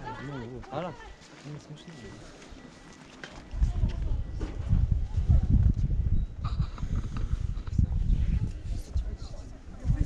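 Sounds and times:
wind buffeting microphone: 3.4s - 10.0s.

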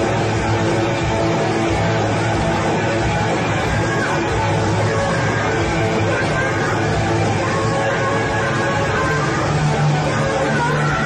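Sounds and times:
live hard rock band playing: 0.0s - 11.0s.

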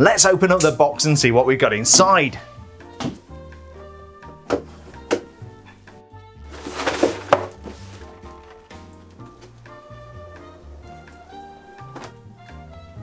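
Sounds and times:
background music sustained notes: 0.0s - 13.0s
cardboard scraping rustle: 6.4s - 9.5s
cardboard box knocks: 6.6s - 8.0s.

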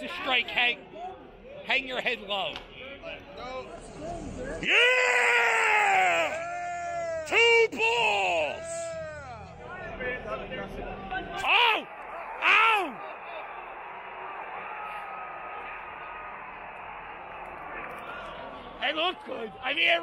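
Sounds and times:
ballpark background noise: 0.0s - 20.0s
men yelling: 4.6s - 9.6s, 11.3s - 16.4s.

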